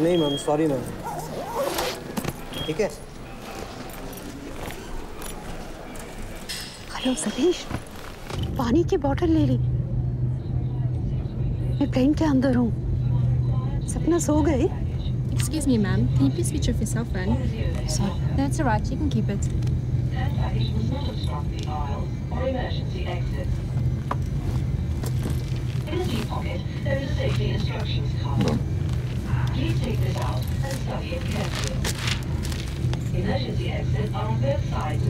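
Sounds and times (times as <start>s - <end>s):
jet airliner cabin drone: 0.0s - 35.0s.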